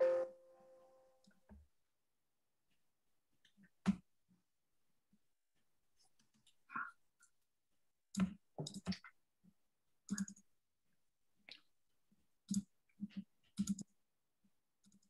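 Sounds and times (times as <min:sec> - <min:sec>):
computer mouse clicks: 0:12.5 - 0:13.9.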